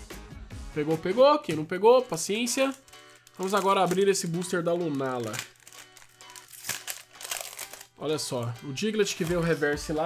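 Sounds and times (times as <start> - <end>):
soft background music: 0.0 - 10.0
foil wrapper crinkling: 2.2 - 8.0.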